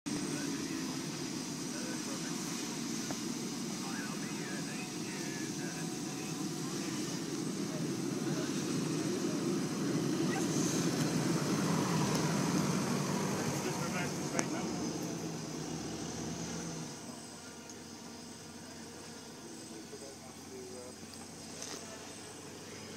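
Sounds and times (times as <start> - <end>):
car engine driving past: 7.0 - 19.4.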